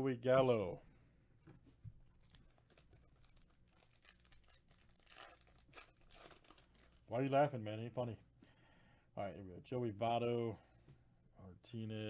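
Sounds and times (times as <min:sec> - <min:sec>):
foil wrapper crinkling and tearing: 0:02.1 - 0:07.5.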